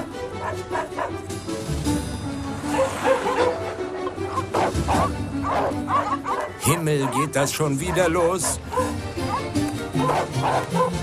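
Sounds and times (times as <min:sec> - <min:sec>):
dogs barking and yipping: 0:00.0 - 0:01.4, 0:02.6 - 0:11.0
background music: 0:00.0 - 0:11.0.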